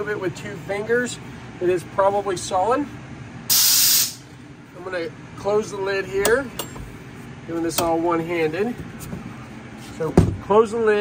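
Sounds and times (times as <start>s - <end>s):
short loud hiss: 3.5s - 4.2s.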